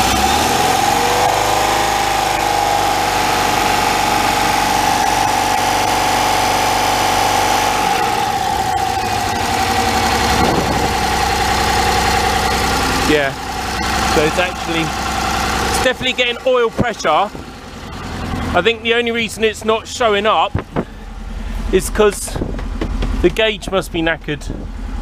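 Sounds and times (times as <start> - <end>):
car engine idling: 0.0 - 25.0.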